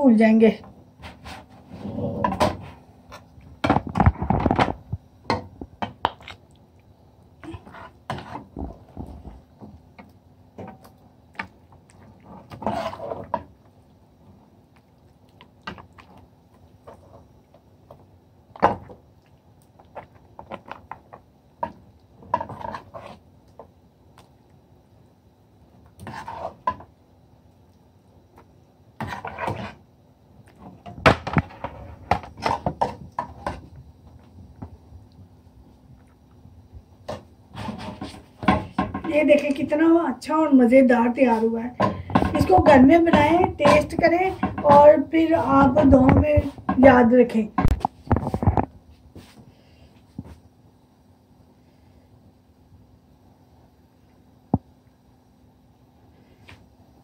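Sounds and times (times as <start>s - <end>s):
faint steady hum: 0.0s - 57.0s
metal spoon scraping pot: 12.4s - 13.4s.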